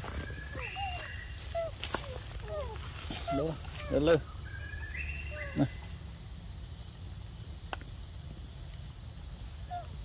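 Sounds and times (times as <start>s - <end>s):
insect drone: 0.0s - 10.0s
baby monkey high call: 0.5s - 4.0s.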